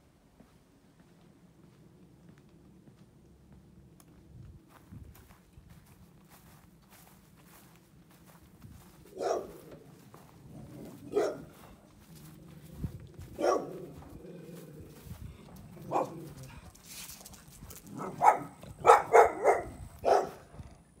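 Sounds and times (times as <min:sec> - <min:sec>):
dog barking: 0:09.1 - 0:09.8, 0:10.9 - 0:11.8, 0:13.3 - 0:14.1, 0:15.7 - 0:16.7, 0:17.8 - 0:20.6.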